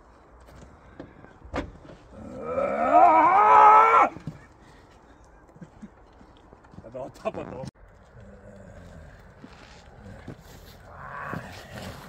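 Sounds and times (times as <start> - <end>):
man roaring: 2.1 - 4.2, 10.0 - 12.0.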